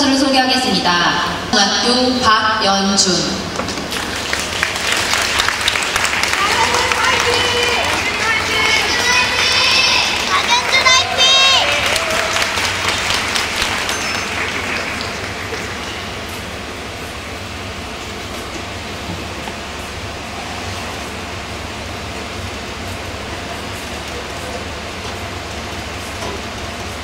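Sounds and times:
arena background noise with hum: 0.0s - 27.0s
audience applauding: 3.8s - 16.7s.

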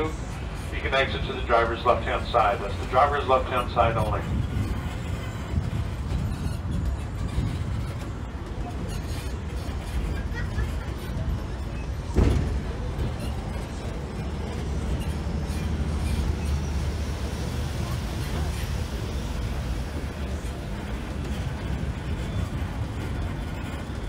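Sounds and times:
tram rumbling along road: 0.0s - 24.0s.

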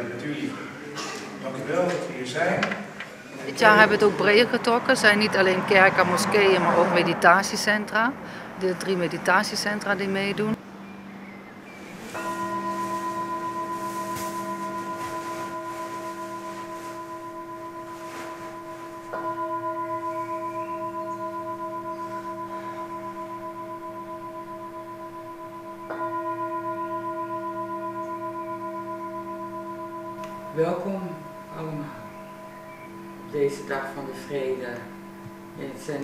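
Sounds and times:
singing bowl ringing: 3.6s - 6.6s, 10.8s - 36.0s.

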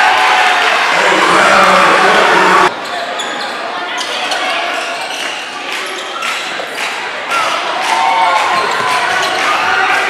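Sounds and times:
crowd noise: 0.0s - 10.0s
crowd voices: 0.0s - 10.0s.

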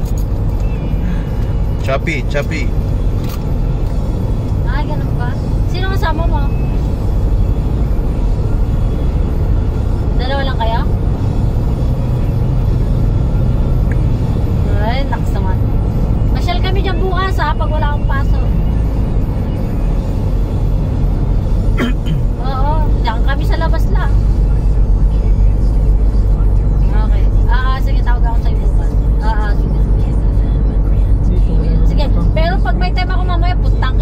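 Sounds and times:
road and engine drone in car: 0.0s - 34.0s.

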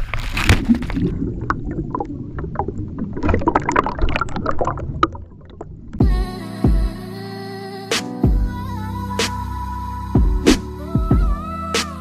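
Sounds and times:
water splashing around boat: 0.0s - 6.1s
low rumble: 0.2s - 6.9s.

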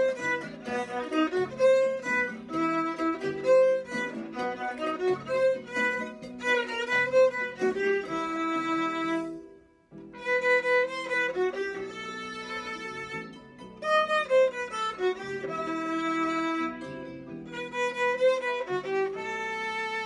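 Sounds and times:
solo violin melody: 0.0s - 20.0s.

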